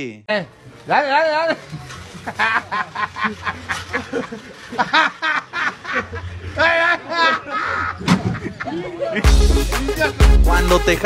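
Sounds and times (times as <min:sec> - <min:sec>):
person laughing hard: 0:02.3 - 0:09.8.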